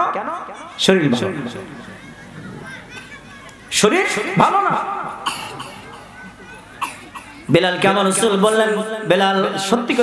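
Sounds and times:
man speaking through a microphone: 0:00.0 - 0:01.8, 0:03.7 - 0:06.0, 0:07.2 - 0:10.0
cough-like throat sound: 0:05.2 - 0:05.8.

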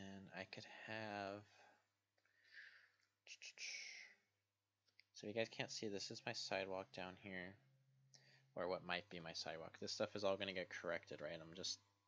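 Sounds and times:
man whispering breathily: 0:03.3 - 0:04.2.

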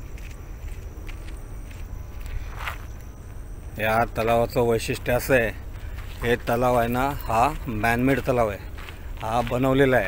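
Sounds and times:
footsteps walking: 0:00.0 - 0:10.0
steady low rumble: 0:00.0 - 0:10.0.

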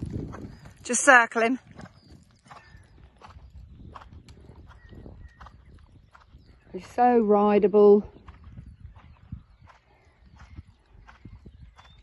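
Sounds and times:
horse hoofbeats on sand: 0:00.0 - 0:12.0.

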